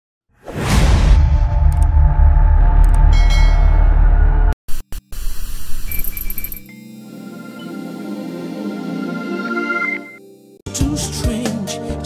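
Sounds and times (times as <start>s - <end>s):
deep bass drone: 0.9s - 4.6s.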